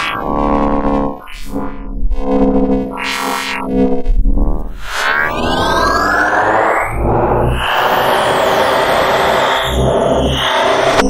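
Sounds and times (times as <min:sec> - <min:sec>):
noisy synth sweep: 0:00.0 - 0:11.0
low bass booms: 0:03.7 - 0:04.8
slowly rising tone: 0:03.9 - 0:07.4.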